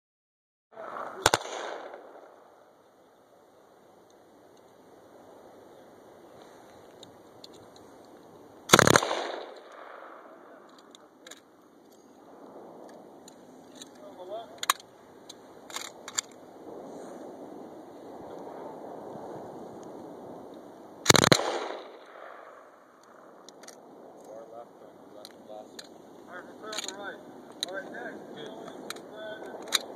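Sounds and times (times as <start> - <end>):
machine gun burst with echo: 0.8 - 2.3, 8.7 - 10.1, 21.0 - 22.3
machine gun burst: 8.7 - 9.5, 21.1 - 21.8.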